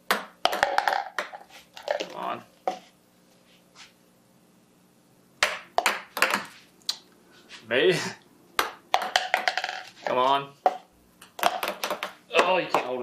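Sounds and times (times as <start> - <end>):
balls knocking plastic cups: 0.0 - 2.8, 5.4 - 6.6, 8.6 - 13.0
plastic balls bouncing on wood: 0.0 - 2.8, 5.4 - 6.6, 8.6 - 13.0.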